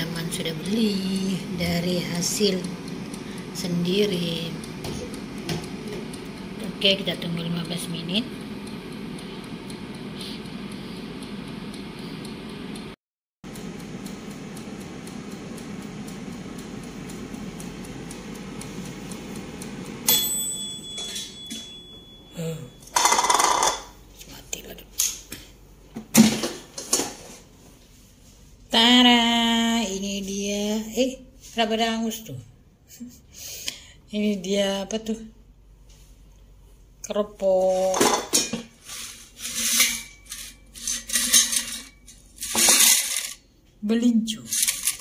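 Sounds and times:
air fryer fan whirring: 0.0 - 45.0
bell-like ding: 20.1 - 23.0.

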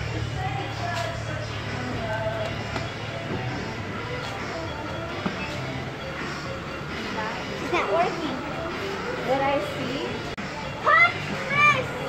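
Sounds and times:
store background music: 0.0 - 12.0.

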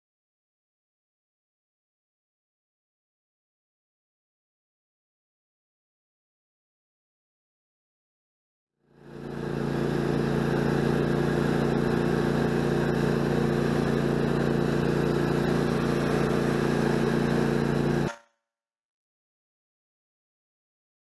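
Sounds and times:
riding lawn mower engine running: 8.9 - 18.2.

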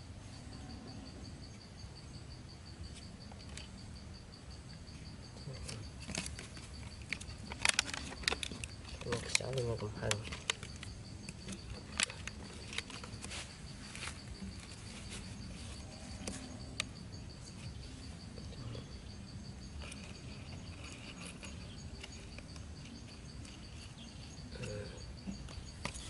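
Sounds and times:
high-pitched insect drone: 0.3 - 26.0.

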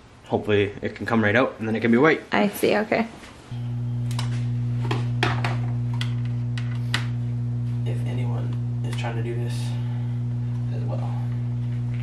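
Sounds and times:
steady low hum: 3.5 - 12.0.

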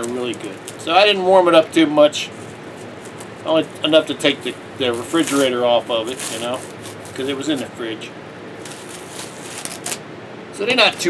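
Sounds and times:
plastic bag crinkling: 4.9 - 7.7, 8.6 - 10.0.

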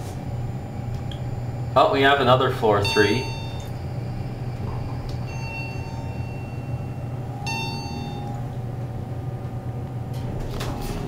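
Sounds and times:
elevator hum: 0.0 - 11.0
short high tones: 5.3 - 8.5.

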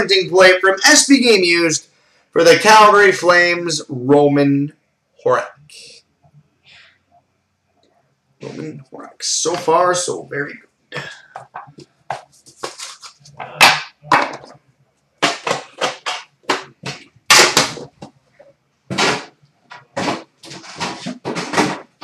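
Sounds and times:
cards and packaging rustling: 11.3 - 13.6.

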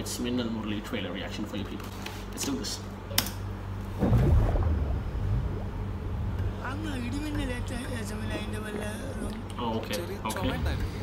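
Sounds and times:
deep rumble: 3.9 - 8.0.

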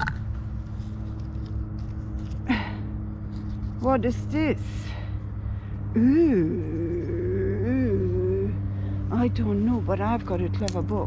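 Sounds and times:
low rumble and faint hum: 0.0 - 11.0
woman speaking: 3.8 - 5.1, 6.0 - 11.0.

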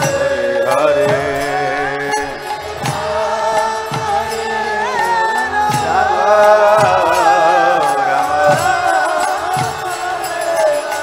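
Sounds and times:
drum strokes: 0.0 - 11.0
group chanting: 0.0 - 11.0
harmonium sustained notes: 0.0 - 11.0.

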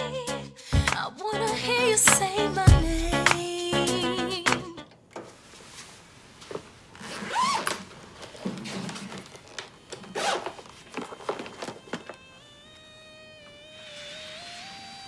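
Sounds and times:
fabric bag rustling: 5.3 - 12.2
zip pulled: 7.0 - 7.9, 10.0 - 10.7, 12.5 - 15.0
soft background music: 9.2 - 15.0.

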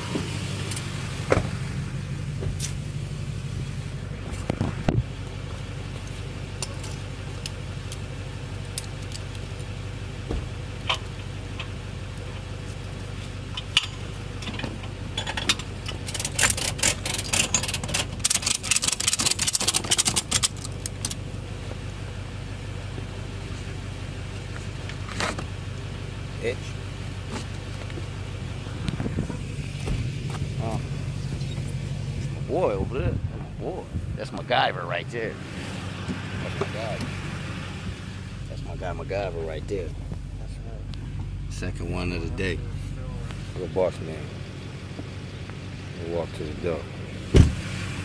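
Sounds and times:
vehicle engine idling: 0.0 - 48.0
metallic clinks and rattles: 13.6 - 21.2.

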